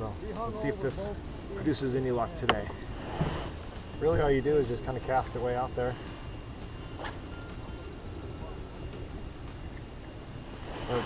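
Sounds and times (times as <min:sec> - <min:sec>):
low open-air rumble: 0:00.0 - 0:11.0.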